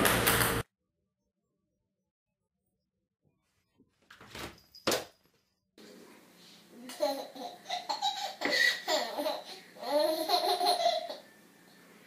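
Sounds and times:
baby laughing: 6.8 - 11.3.

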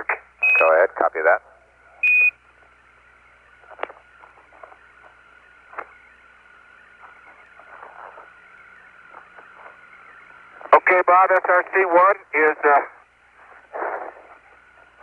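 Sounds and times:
faint steady tone: 0.0 - 15.0
radio crackles: 0.0 - 15.0
radio hiss: 0.0 - 15.0.

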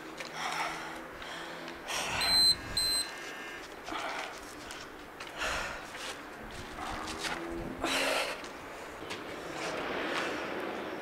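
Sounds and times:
hard breathing: 0.3 - 9.0
timer beeps: 2.2 - 3.1.

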